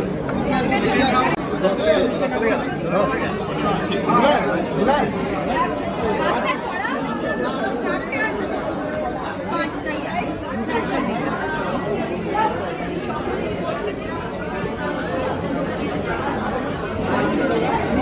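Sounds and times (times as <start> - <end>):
people chattering: 0.0 - 18.0.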